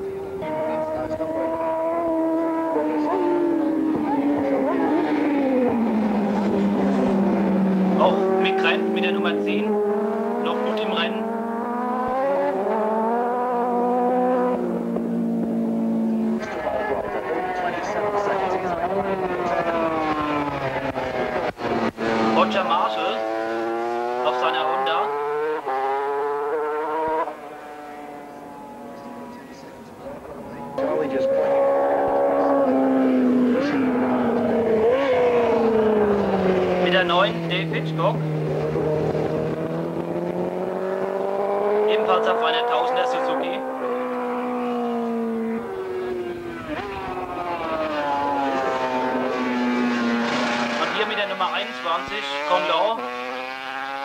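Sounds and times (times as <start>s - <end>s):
racing motorcycle engines passing: 0.0s - 54.0s.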